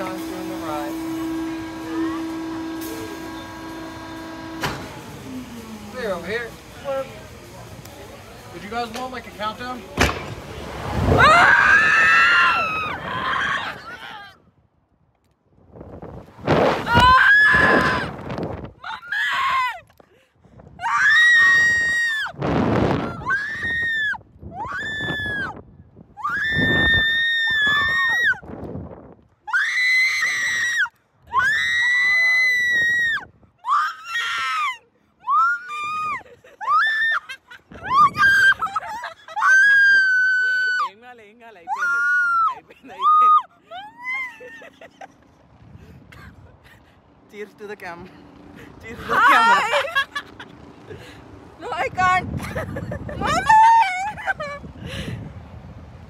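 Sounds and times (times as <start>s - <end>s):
rushes of air noise: 0.0s - 14.7s, 15.5s - 18.8s, 20.4s - 29.3s, 45.2s - 47.3s, 48.0s - 56.0s
riders screaming: 11.1s - 14.4s, 16.8s - 18.2s.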